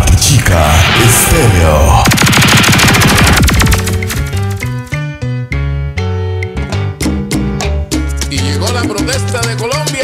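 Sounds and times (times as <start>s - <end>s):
stuttering roll of rapid hits: 0.0s - 4.6s.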